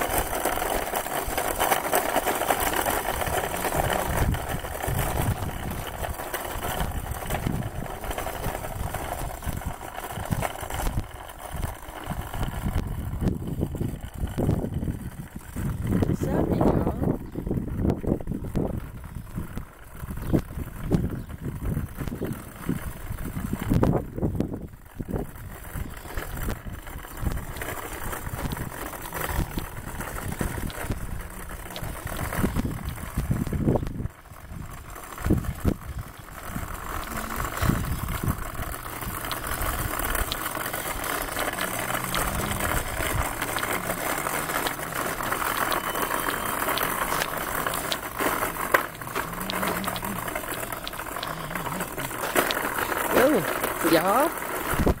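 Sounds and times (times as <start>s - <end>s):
cart rolling over asphalt: 0.0s - 55.0s.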